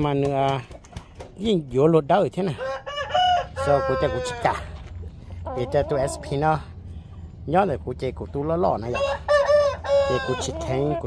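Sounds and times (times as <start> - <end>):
rooster crowing: 2.6 - 4.7, 9.0 - 10.9.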